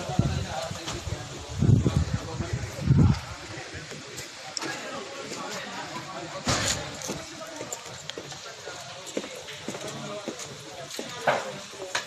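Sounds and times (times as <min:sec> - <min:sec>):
footsteps on concrete: 0:09.0 - 0:11.6.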